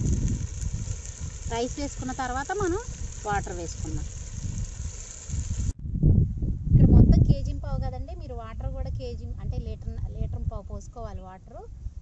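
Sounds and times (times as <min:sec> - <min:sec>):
curry sizzling in a pot: 0:00.0 - 0:05.8
wind rumble on microphone: 0:00.0 - 0:12.0
woman's voice: 0:01.5 - 0:04.1, 0:06.8 - 0:11.7.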